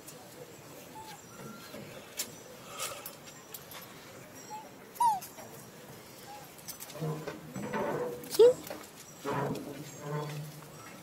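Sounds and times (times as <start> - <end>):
monkey squeaking: 4.4 - 5.4.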